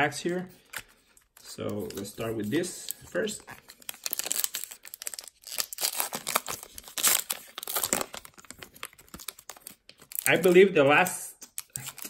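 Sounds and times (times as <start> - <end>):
wrapper tearing and crinkling: 3.0 - 10.6, 11.5 - 12.0.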